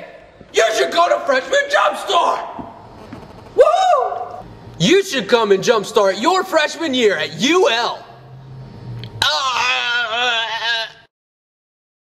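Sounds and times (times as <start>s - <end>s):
low hum: 2.7s - 10.4s
person wailing: 9.2s - 11.1s.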